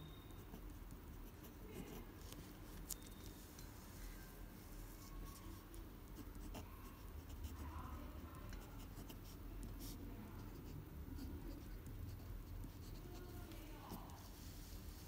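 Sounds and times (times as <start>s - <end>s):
pen scratching on paper: 0.4s - 2.4s, 5.0s - 14.4s.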